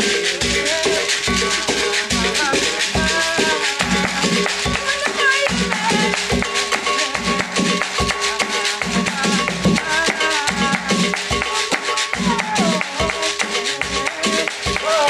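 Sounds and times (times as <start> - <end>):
drum strokes: 0.0 - 15.0
shaken rattles: 0.0 - 15.0
wavering melody line: 0.0 - 15.0.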